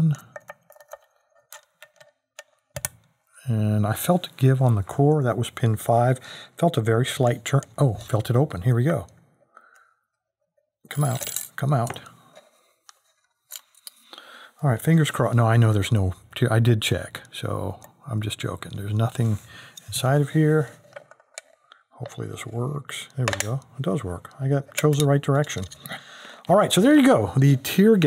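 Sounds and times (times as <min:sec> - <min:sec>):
metal tools clicking: 0:24.7 - 0:25.9.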